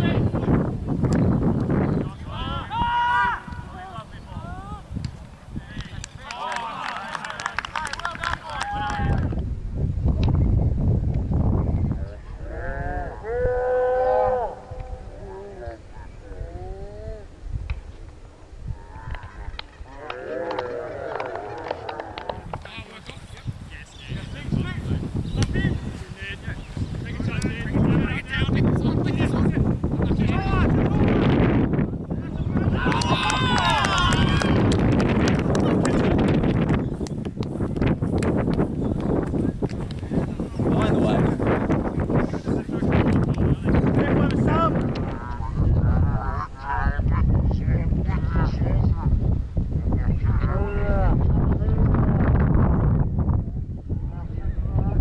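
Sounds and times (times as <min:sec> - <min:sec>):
wind rumbling on microphone: 0:00.0 - 0:55.0
players shouting: 0:02.2 - 0:04.8, 0:06.1 - 0:09.2, 0:32.3 - 0:34.7.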